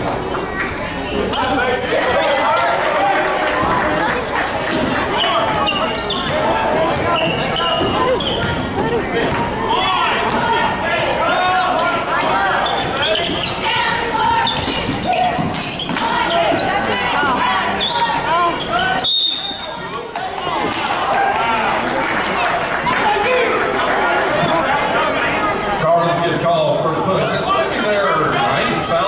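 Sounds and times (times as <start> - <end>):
spectators' voices: 0.0 - 29.0.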